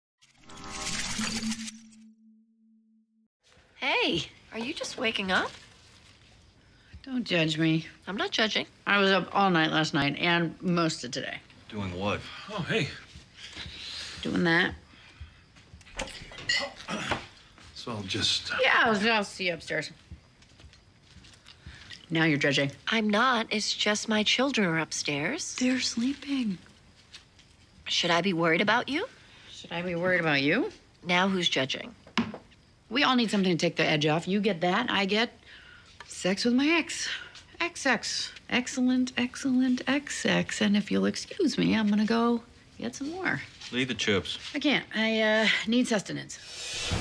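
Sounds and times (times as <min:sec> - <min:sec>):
metallic shimmering logo sting: 0:00.3 - 0:02.4
soft footsteps: 0:12.6 - 0:16.4, 0:19.3 - 0:22.1.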